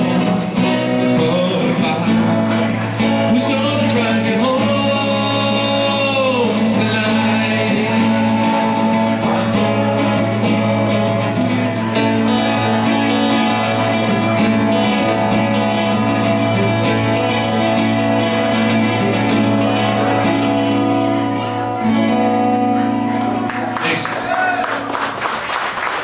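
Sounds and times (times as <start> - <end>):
acoustic guitars strumming chords: 0.0 - 25.6.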